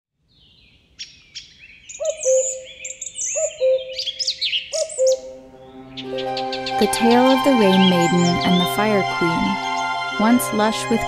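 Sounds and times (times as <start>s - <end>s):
birds chirping and trilling: 0.3s - 11.0s
two-note bird call: 4.7s - 11.0s.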